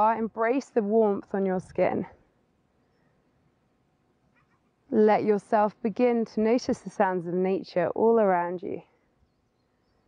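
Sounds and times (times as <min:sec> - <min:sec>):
woman's voice: 0:00.0 - 0:02.2, 0:04.9 - 0:08.9
faint outdoor background hiss: 0:00.0 - 0:10.0.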